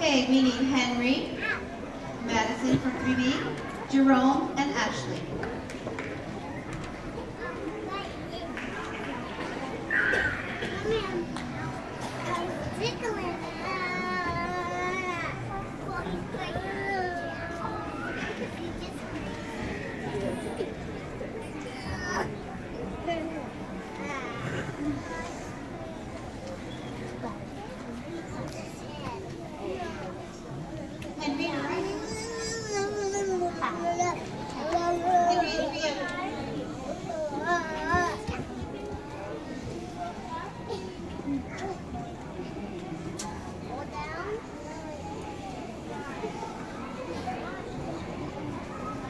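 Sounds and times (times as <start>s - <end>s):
children chattering: 0.0s - 49.0s.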